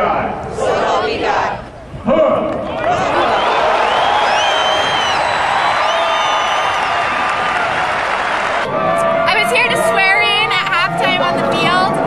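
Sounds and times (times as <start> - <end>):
stadium crowd applauding and cheering: 2.7 - 10.6.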